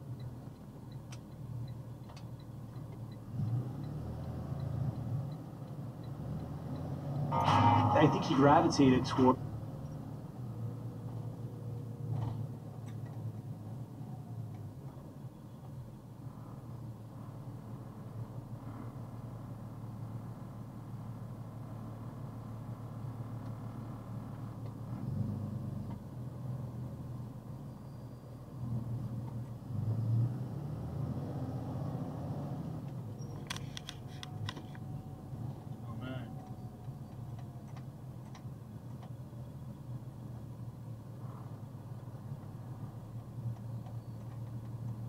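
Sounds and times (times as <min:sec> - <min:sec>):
road noise: 0:00.0 - 0:45.0
truck engine rumble: 0:00.0 - 0:45.0.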